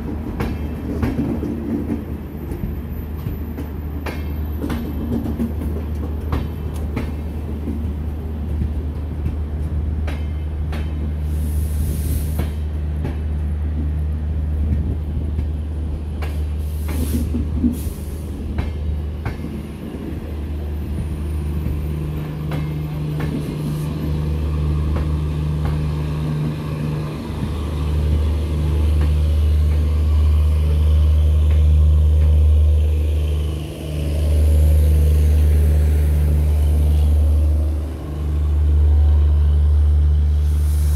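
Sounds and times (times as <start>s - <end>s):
train coaches rumbling past: 0.0s - 40.9s.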